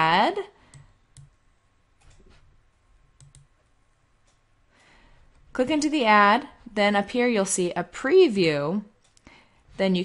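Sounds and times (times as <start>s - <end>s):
computer mouse clicks: 0.6s - 1.4s, 2.0s - 2.4s, 3.2s - 5.5s.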